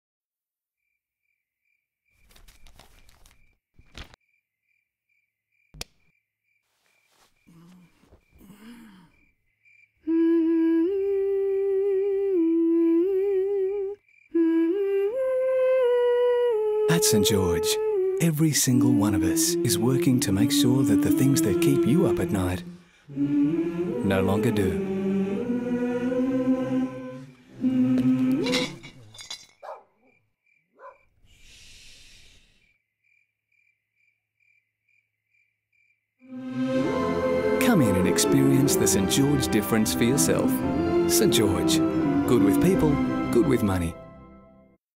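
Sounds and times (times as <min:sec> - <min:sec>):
person humming a lullaby: 0:10.0 - 0:28.8
soft breathy hiss: 0:31.2 - 0:32.7.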